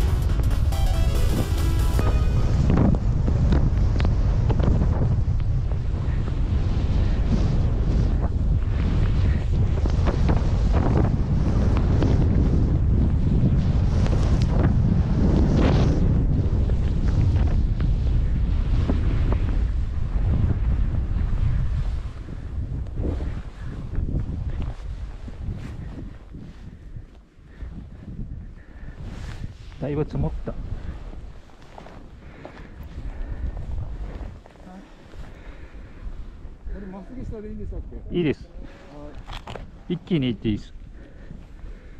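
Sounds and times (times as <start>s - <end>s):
wind rushing over microphone: 0.0s - 41.9s.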